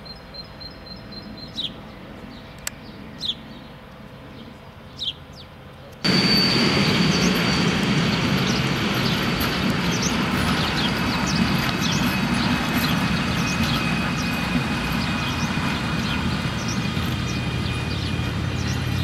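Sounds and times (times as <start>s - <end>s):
thin high whine: 6.0s - 19.0s
train wheels rumbling on rail: 6.0s - 19.0s.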